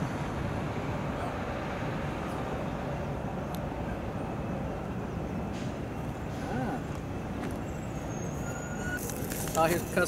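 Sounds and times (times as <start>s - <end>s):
vehicle and machinery rumble: 0.0s - 10.0s.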